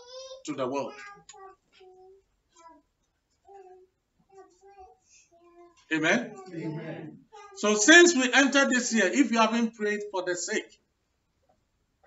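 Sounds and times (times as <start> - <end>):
faint high child's voice: 0.0 - 7.7.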